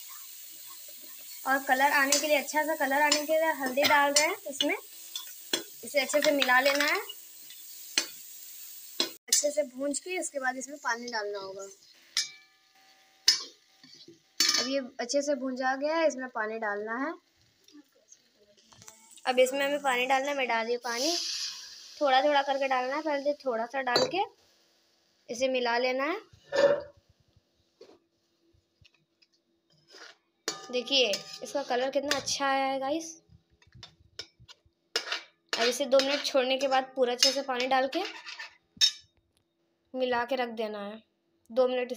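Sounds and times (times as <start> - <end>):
faint sizzling in a pan: 0.0 - 39.2
spatula clicking against steel pan: 3.1 - 4.3
ladle scraping the pan: 29.7 - 32.3, 34.5 - 36.4, 37.2 - 38.6
ladle stirring: 29.7 - 32.3.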